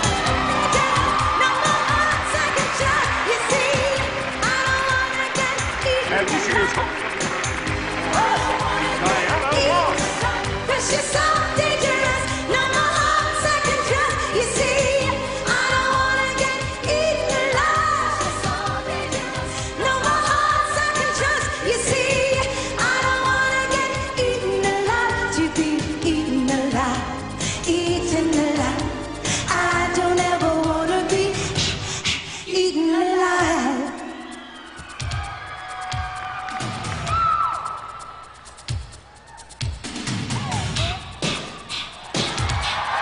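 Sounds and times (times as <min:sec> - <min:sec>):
woman singing pop song: 0:00.0 - 0:07.0, 0:08.0 - 0:34.2.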